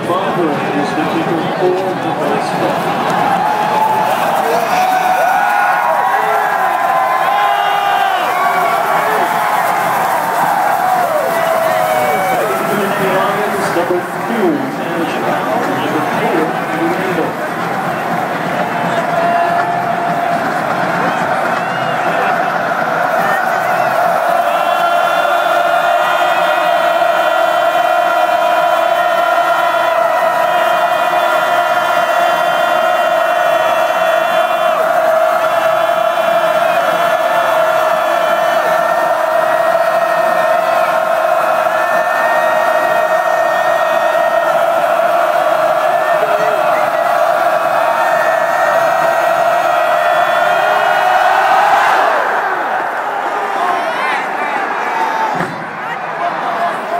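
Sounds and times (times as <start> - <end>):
stadium crowd roaring: 0.0 - 56.9.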